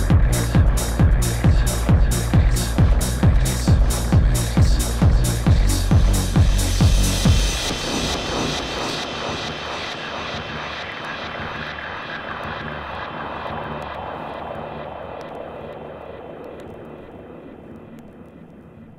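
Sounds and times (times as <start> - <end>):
noisy synth wash: 0.0 - 18.9.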